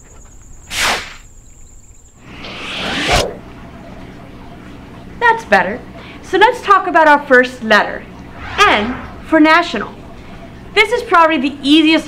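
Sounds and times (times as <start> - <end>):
insects trilling: 0.0 - 2.6
whoosh ending in low thump: 8.3 - 10.1
quick swish: 8.4 - 9.4.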